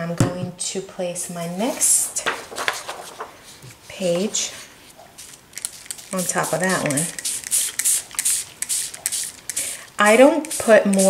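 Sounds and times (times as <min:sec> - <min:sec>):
spray bottle spritzes: 0:05.2 - 0:11.0.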